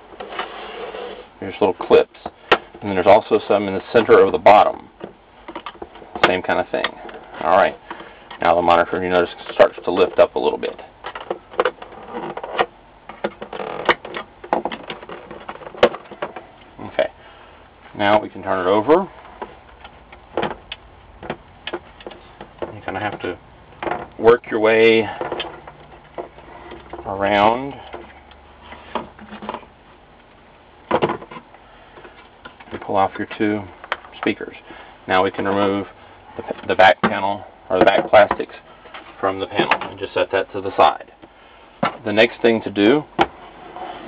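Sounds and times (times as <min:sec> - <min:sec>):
loud clunk of monitor parts: 0:30.9 - 0:31.4.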